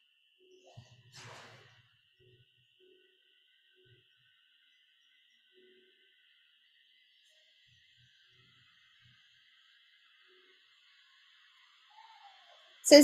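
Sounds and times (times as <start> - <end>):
faint high-pitched hum: 0.0 - 13.0.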